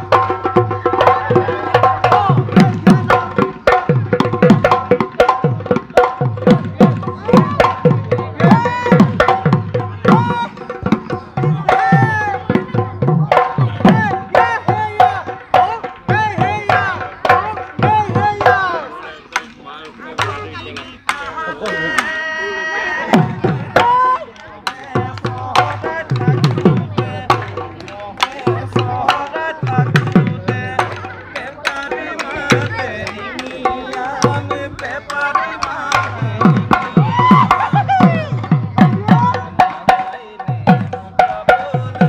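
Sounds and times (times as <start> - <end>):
dhol drumming: 0.0 - 42.0
voices: 0.0 - 42.0.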